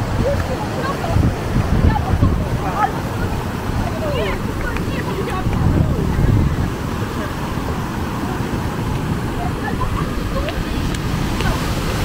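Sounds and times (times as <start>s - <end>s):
waterfall roaring: 0.0s - 12.0s.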